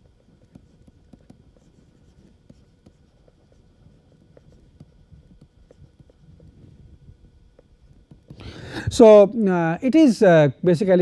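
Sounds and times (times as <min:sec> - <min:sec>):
stylus writing on tablet: 0:00.0 - 0:08.4.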